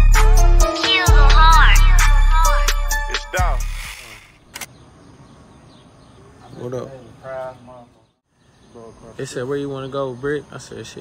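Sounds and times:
faint steady background noise: 4.4 - 11.0.

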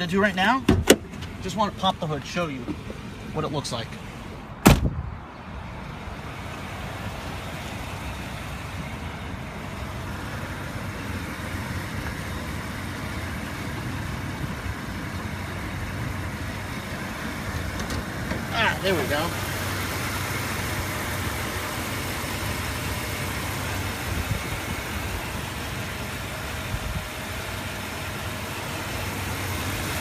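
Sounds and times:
car engine idling: 0.0 - 30.0.

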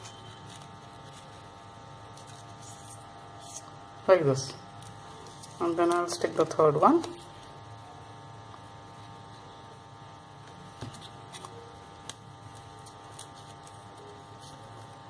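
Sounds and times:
faint electrical hum: 0.0 - 15.0.

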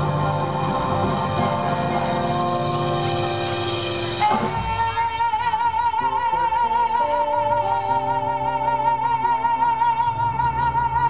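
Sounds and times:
blues band playing: 0.0 - 11.0.

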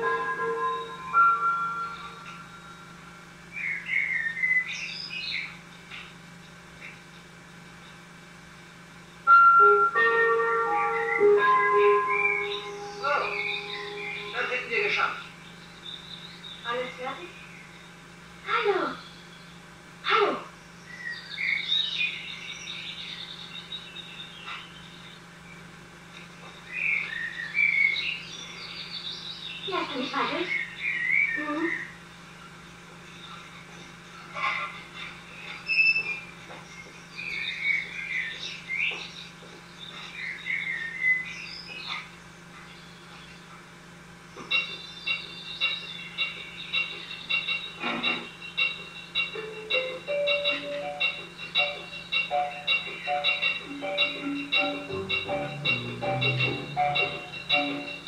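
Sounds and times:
music with steady high tones: 0.0 - 3.3, 9.3 - 14.9, 44.5 - 58.0
high wavering chirps and whistles: 10.8 - 16.7, 44.5 - 58.0.

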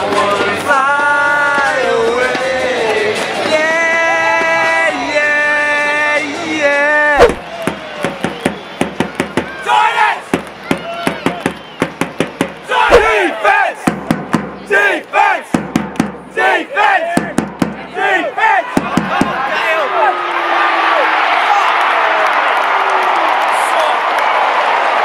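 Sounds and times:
crowd shouting a chant: 0.0 - 8.0, 9.4 - 11.4, 12.6 - 13.9, 14.6 - 15.6, 16.2 - 22.5
drum beaten with mallet: 13.8 - 14.6, 15.5 - 16.3, 17.2 - 17.8, 18.8 - 19.4
heavy low drum thumps: 13.9 - 14.7, 15.5 - 16.3.

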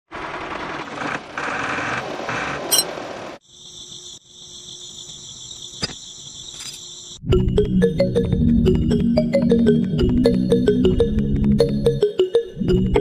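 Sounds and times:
cricket-like trill: 2.7 - 7.3
insects buzzing: 3.4 - 7.2.

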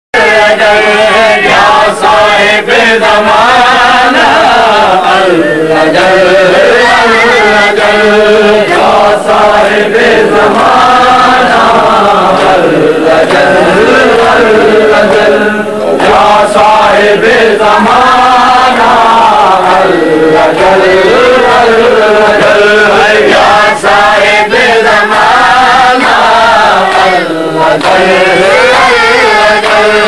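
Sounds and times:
voices chanting devotional poem: 0.2 - 30.0.

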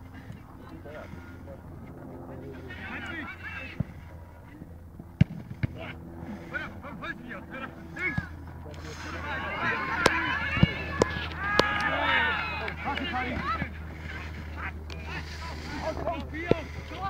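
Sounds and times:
distant shouts and calls: 0.0 - 4.9, 5.6 - 17.0
ball being kicked: 5.2 - 5.8.

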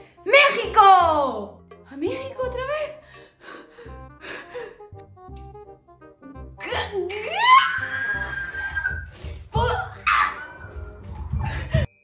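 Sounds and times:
light background music: 0.0 - 12.0
girl's excited shriek: 7.2 - 10.7.

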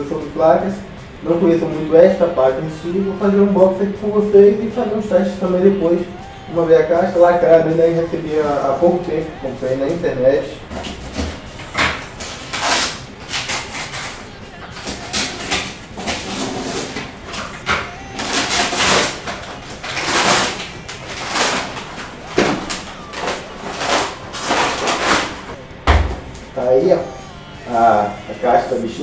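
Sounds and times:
paper padding crumpled: 6.8 - 25.6
packing tape and cardboard tearing: 10.6 - 26.6.

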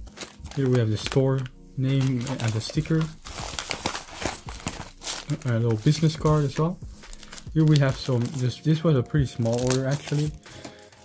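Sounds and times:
plastic bags and paper crinkling: 0.0 - 11.0.

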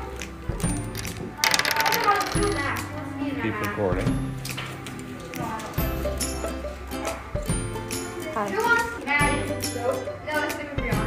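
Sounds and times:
background music: 0.0 - 11.0
dice clattering on wooden desk: 0.8 - 2.8.

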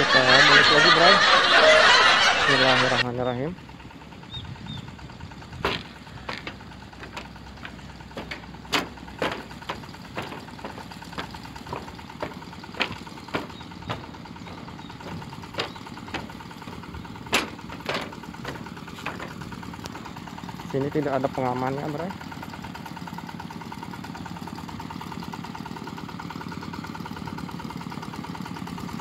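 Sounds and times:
low background rumble: 3.8 - 20.8
footsteps on steel plates: 5.6 - 20.2.

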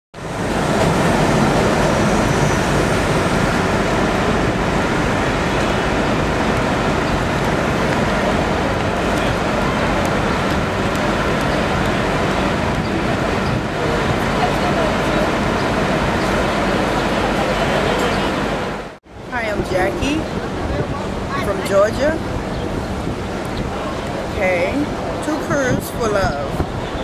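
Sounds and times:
city road traffic rumble: 0.1 - 27.0.

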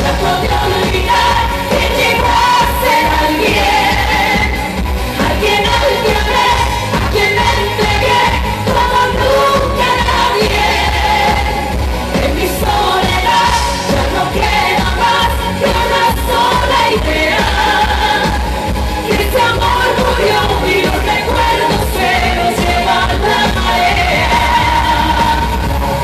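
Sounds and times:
woman singing pop song live: 0.0 - 26.0.

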